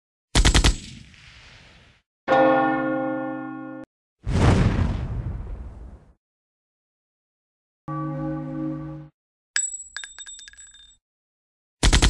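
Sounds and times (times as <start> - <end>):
bell toll: 2.3 - 3.8.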